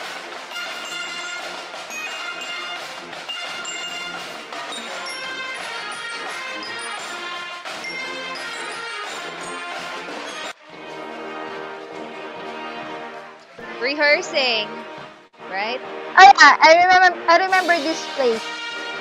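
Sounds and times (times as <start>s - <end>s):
brass band sustained chords: 0.0s - 19.0s.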